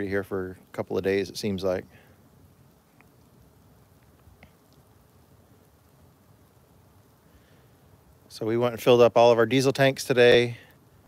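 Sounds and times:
faint outdoor hiss: 0.0s - 11.0s
faint ticks: 2.6s - 7.6s.

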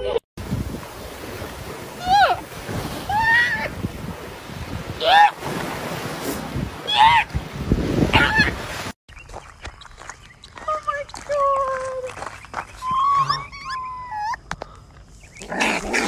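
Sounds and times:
surf washing: 0.4s - 9.0s.

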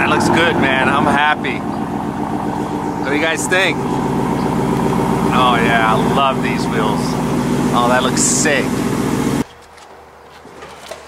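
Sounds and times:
truck engine passing by: 0.0s - 9.4s.

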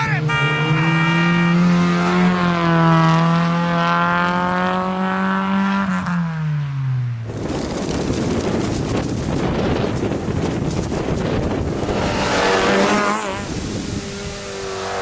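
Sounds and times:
rally car engine at high revs: 0.2s - 9.9s, 10.6s - 15.0s.

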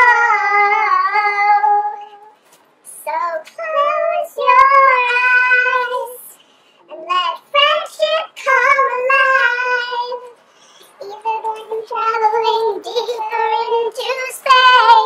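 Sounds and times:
child singing: 0.0s - 15.0s.

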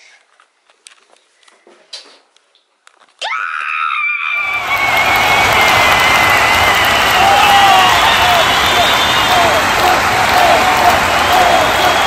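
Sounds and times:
high excited scream: 3.2s - 12.0s
crowd cheering and applause: 4.3s - 12.0s.

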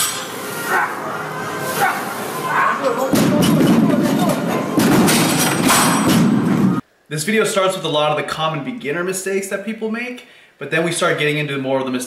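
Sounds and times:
gym background noise: 0.0s - 6.8s.

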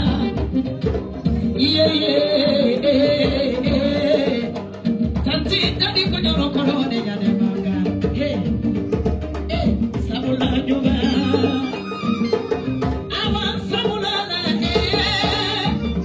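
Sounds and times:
djembe hand drumming: 0.0s - 16.0s
woman singing into microphone: 0.0s - 16.0s.

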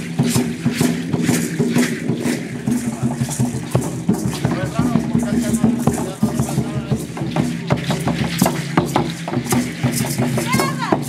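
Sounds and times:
dance rattles shaking: 0.0s - 11.0s
drum beats: 0.0s - 11.0s.

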